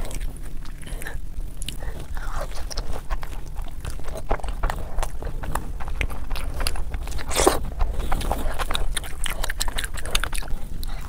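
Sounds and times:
wet chewing and lip smacking: 0.0s - 11.0s.

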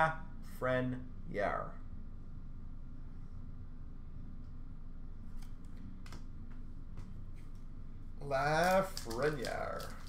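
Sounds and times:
low room hum: 0.0s - 10.0s
trading cards clicking: 8.3s - 10.0s.

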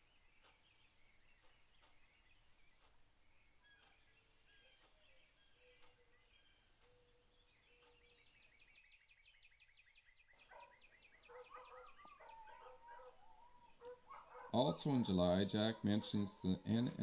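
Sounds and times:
wavering yelping animal calls: 10.5s - 16.8s.

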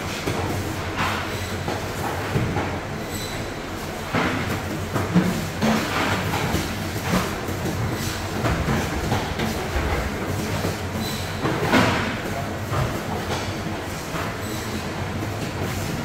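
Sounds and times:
machinery rumble: 5.8s - 14.2s.

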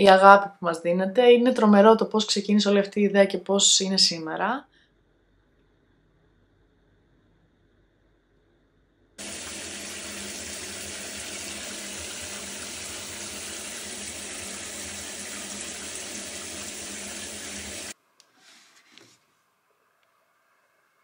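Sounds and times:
water running into a bathtub: 9.2s - 18.0s.

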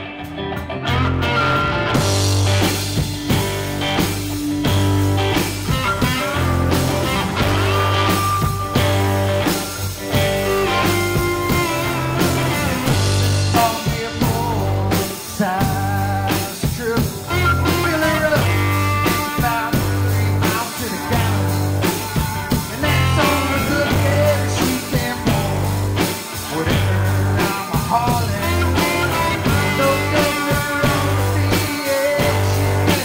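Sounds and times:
bass: 0.0s - 33.0s
drums: 0.0s - 33.0s
electric guitar lead: 0.0s - 33.0s.

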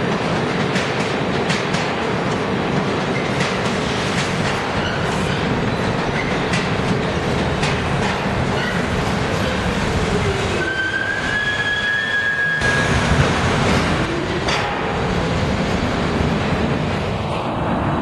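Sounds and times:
subway train rumbling: 0.0s - 18.0s
wheels clicking over rail joints: 0.1s - 10.3s
train braking whine: 10.6s - 13.3s.

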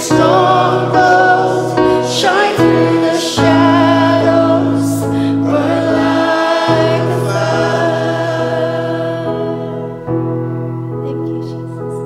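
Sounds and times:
several voices singing: 0.0s - 10.2s
band holding sustained chords: 0.0s - 12.0s.

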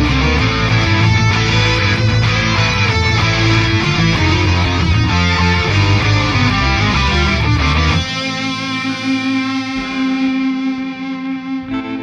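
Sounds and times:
bass guitar: 0.0s - 12.0s
distorted electric guitars: 0.0s - 12.0s.

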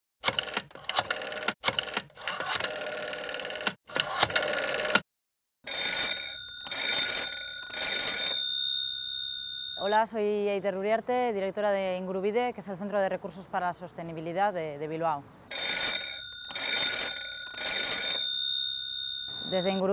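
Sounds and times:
telephone bell ringing: 5.7s - 10.2s, 15.5s - 19.9s
voices: 19.3s - 19.9s.

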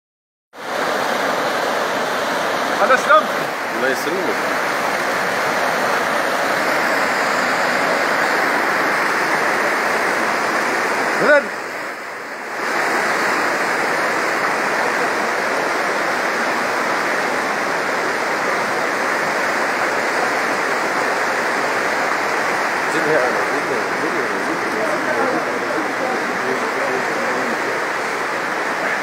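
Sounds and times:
floodwater rushing: 0.6s - 29.0s.

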